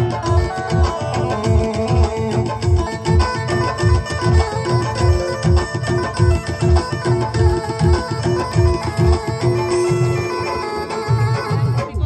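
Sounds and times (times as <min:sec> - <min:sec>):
hand drum rhythm: 0:00.0 - 0:12.0.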